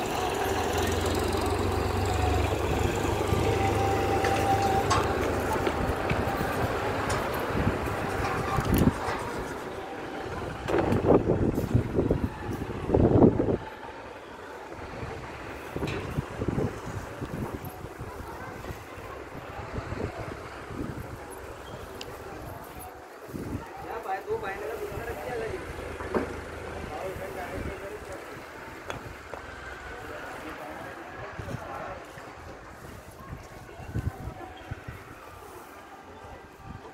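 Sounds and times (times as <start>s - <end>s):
faint voices: 0.0s - 36.9s
wind buffeting microphone: 1.0s - 35.5s.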